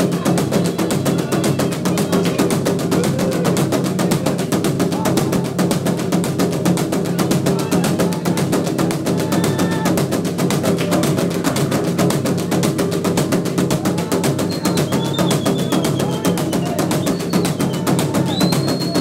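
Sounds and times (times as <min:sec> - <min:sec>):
fast drumming: 0:00.0 - 0:19.0.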